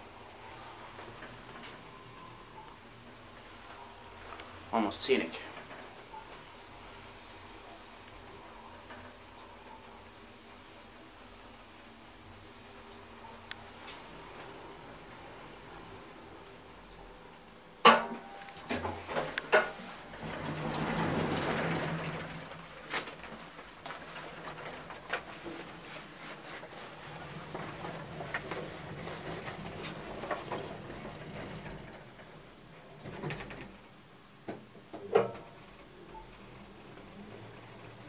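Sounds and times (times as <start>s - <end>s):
elevator car rushing: 18.6s - 25.8s, 26.6s - 34.0s.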